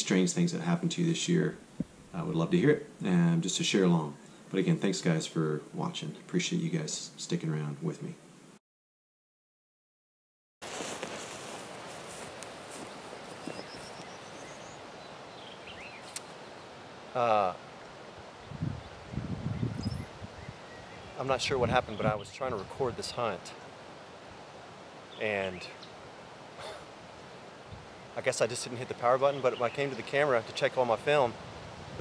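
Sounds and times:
steady outdoor hiss: 0.0 - 8.6, 10.6 - 32.0
boots rustling in long grass: 10.6 - 16.4
bird chirps: 12.8 - 16.7, 18.8 - 21.2
bird singing: 12.8 - 16.8, 18.4 - 22.6, 25.0 - 26.0, 27.4 - 30.4.

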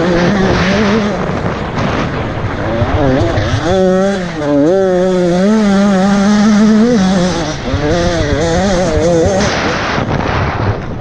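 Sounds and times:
off-road motorcycle engine: 0.0 - 11.0.

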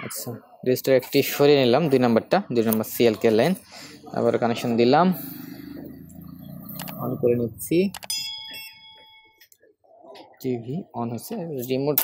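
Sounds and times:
bell chime: 8.0 - 9.5.

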